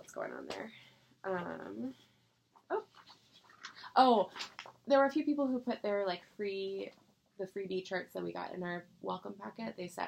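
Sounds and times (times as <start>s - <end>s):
soft clicks and rustles: 2.4s - 4.9s.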